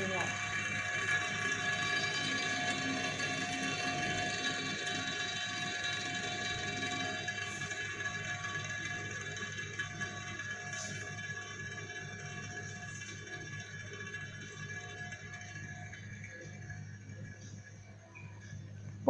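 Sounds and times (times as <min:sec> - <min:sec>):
toy spinner whirring on glass: 0:00.0 - 0:19.0.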